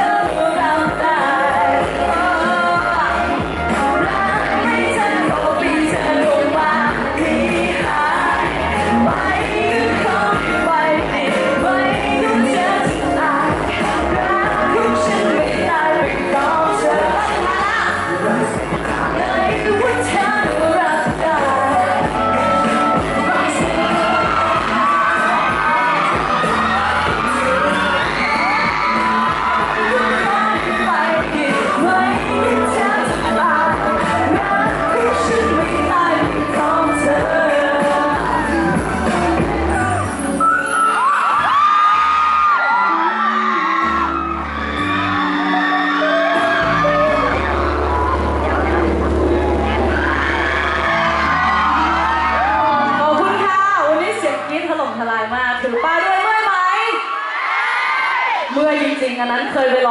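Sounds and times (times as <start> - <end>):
woman singing into microphone: 0.0 - 40.0, 51.7 - 57.0
loud pop backing track: 0.0 - 59.9
audience whooping and shouting: 22.4 - 32.2, 32.9 - 54.0, 55.6 - 59.0.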